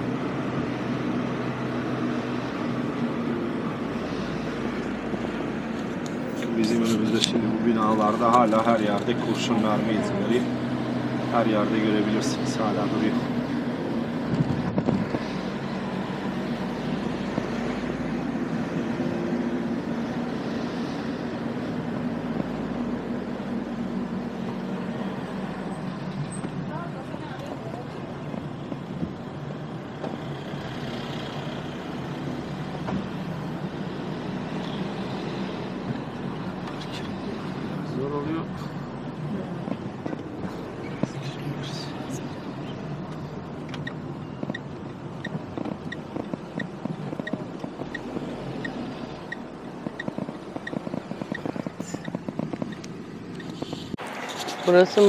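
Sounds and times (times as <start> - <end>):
car engine and road hum: 0.0 - 55.0.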